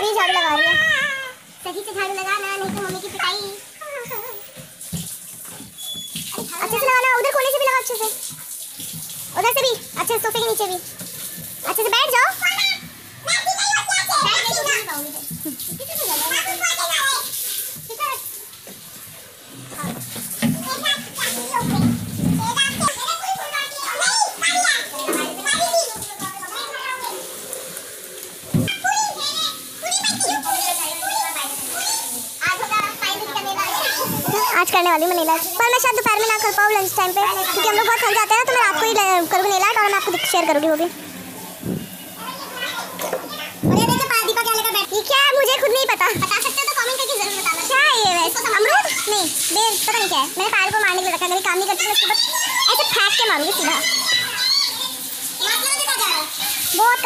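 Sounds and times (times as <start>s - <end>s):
children chattering and playing: 0.0s - 4.6s, 5.4s - 57.0s.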